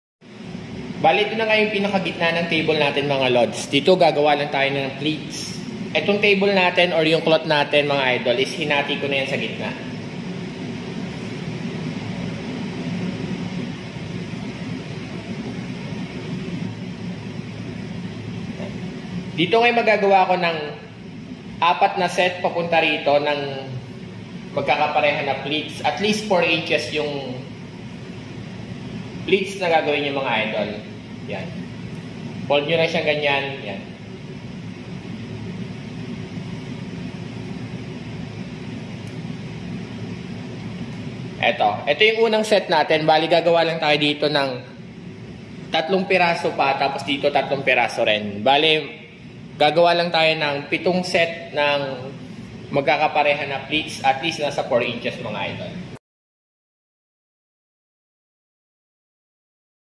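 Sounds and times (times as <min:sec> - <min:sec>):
steady hiss with low hum: 0:00.2 - 0:56.0.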